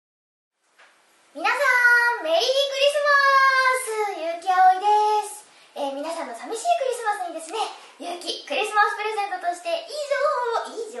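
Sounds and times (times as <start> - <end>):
woman singing in high voice: 1.4 - 6.6
woman speaking: 1.4 - 11.0.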